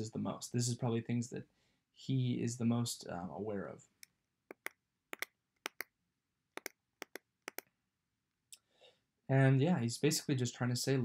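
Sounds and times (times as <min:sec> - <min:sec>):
computer mouse clicks: 0:04.0 - 0:05.9, 0:06.6 - 0:07.7.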